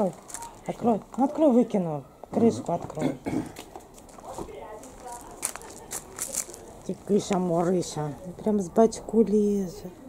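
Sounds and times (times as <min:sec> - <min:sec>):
low indistinct voices talking: 0:00.0 - 0:10.0.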